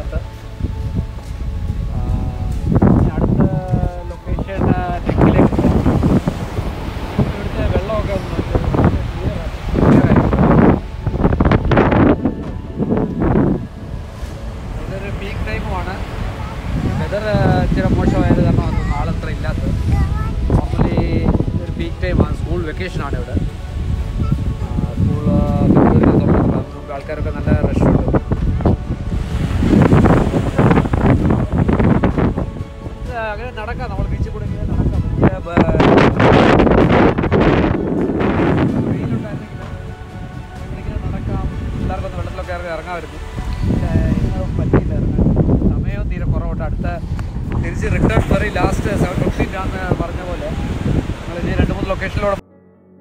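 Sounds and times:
wind buffeting microphone: 0.0s - 52.4s
small waves breaking on beach: 5.0s - 11.1s.

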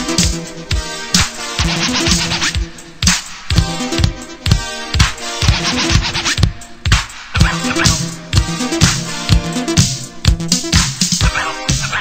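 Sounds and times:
steady kick drum: 0.0s - 12.0s
sustained synth lines: 1.6s - 12.0s.

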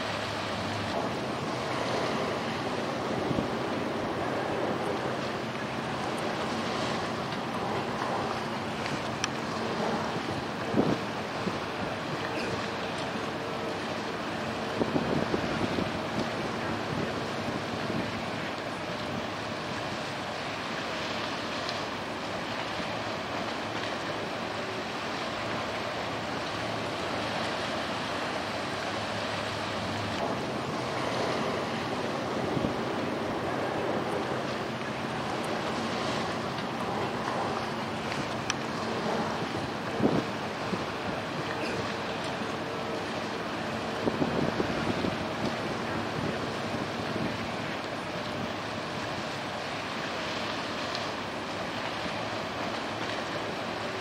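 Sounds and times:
wind buffeting microphone: 0.0s - 19.5s, 25.5s - 49.6s
boat engine humming: 0.0s - 54.0s.

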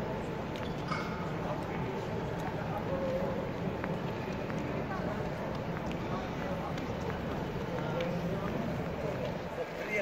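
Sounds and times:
chatter of distant voices: 0.0s - 10.0s.

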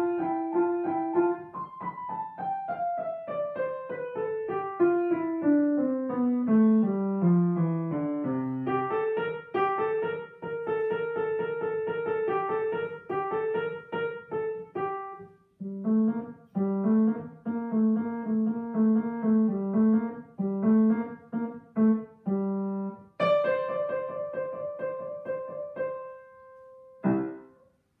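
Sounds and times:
solo grand piano: 0.0s - 28.0s.

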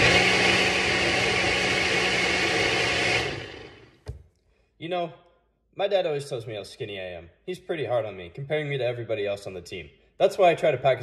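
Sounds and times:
blender running: 0.0s - 4.0s.

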